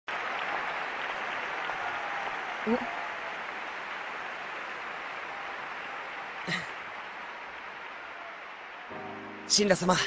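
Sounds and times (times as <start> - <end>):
audience applause: 0.0 - 10.0.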